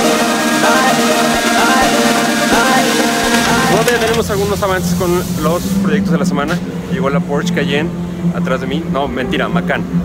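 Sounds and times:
background music: 0.0s - 10.0s
steady low hum: 0.2s - 10.0s
man talking: 3.5s - 9.9s.

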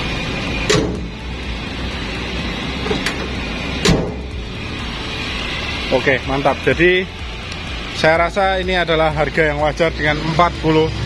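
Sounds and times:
car engine idling: 0.0s - 11.0s
car bonnet shutting: 0.6s - 1.3s, 2.3s - 4.5s.

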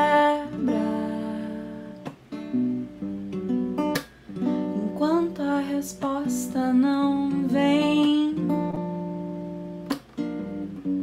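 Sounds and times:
woman singing softly: 0.0s - 2.2s, 4.6s - 8.8s
acoustic guitar strumming: 0.0s - 11.0s.

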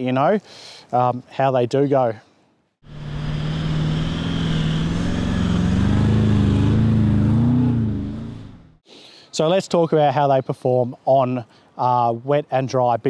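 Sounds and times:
vehicle engine revving: 2.8s - 8.8s.

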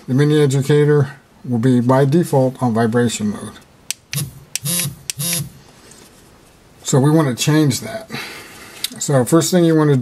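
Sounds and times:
man speaking: 0.1s - 3.7s, 6.8s - 8.2s, 8.9s - 10.0s.

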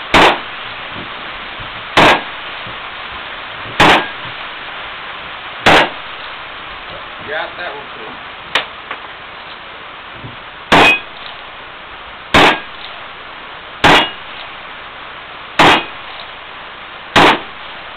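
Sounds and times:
steel plate ringing: 10.7s - 11.3s, 13.8s - 14.4s, 15.6s - 16.2s.

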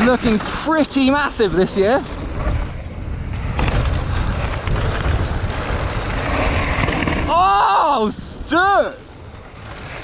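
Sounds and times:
bike tyres rattling over dirt trail: 0.0s - 10.0s
wind rushing over microphone: 0.0s - 10.0s.

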